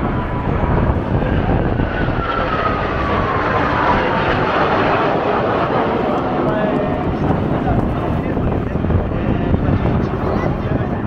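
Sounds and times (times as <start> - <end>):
jet whine falling in pitch: 0.0 - 7.9
jet engine noise: 0.0 - 11.0.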